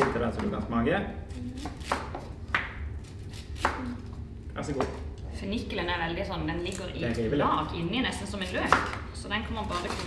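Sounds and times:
knife chopping on plastic board: 0:08.6 - 0:09.0.

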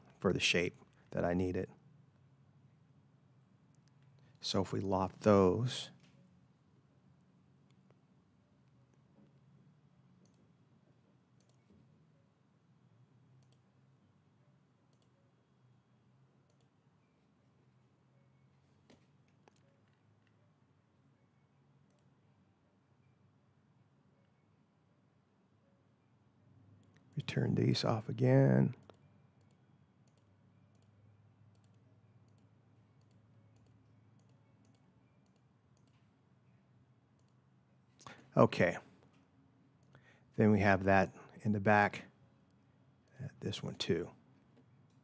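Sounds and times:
low room hum: 0:00.0 - 0:45.0
computer mouse clicking: 0:10.2 - 0:10.5, 0:11.4 - 0:11.7, 0:13.4 - 0:13.7, 0:14.9 - 0:15.2, 0:16.4 - 0:16.8, 0:18.9 - 0:20.4, 0:21.9 - 0:22.1, 0:28.8 - 0:36.1, 0:37.2 - 0:37.4.

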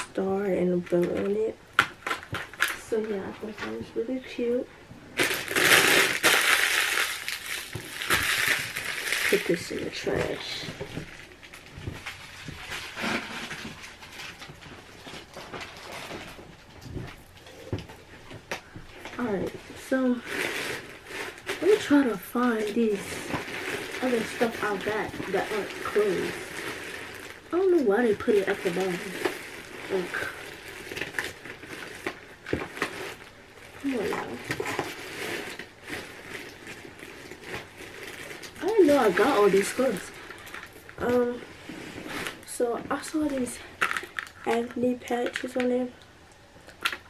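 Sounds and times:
packages rustling in a box: 0:05.2 - 0:16.7, 0:19.0 - 0:44.9.

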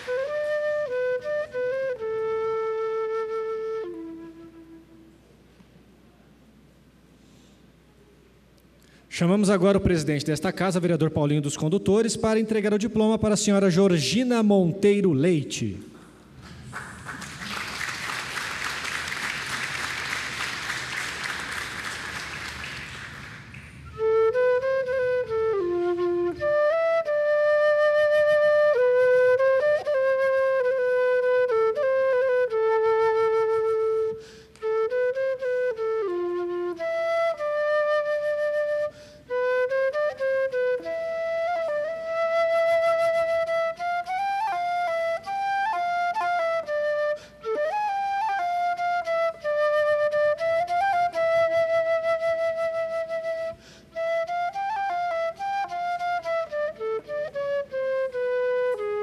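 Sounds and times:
solo flute melody: 0:00.0 - 0:06.2, 0:16.3 - 0:59.0.

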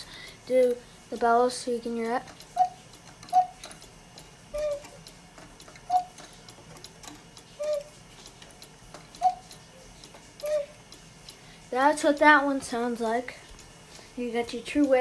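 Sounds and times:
clock ticking: 0:00.0 - 0:15.0
two-note cuckoo calls: 0:02.4 - 0:03.8, 0:04.5 - 0:06.3, 0:07.5 - 0:08.0, 0:09.1 - 0:10.9.

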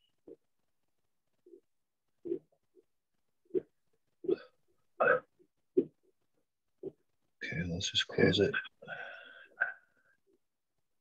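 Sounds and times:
person hiccuping or burping: 0:04.2 - 0:05.9.

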